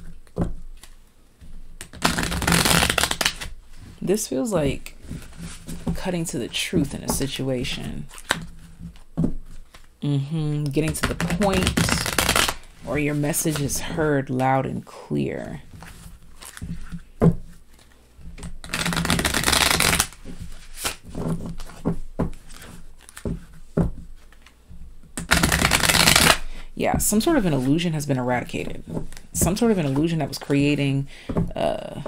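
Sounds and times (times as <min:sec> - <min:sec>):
deck of cards shuffling: 0:01.7 - 0:04.1, 0:04.7 - 0:06.0, 0:10.7 - 0:14.0, 0:15.7 - 0:24.6, 0:25.2 - 0:26.6.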